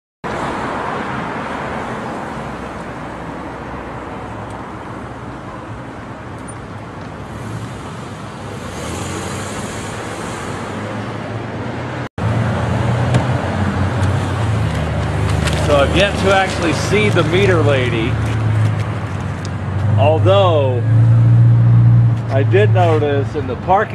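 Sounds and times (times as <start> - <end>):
hiss of passing cars: 7.2 - 11.2, 14.2 - 18.2.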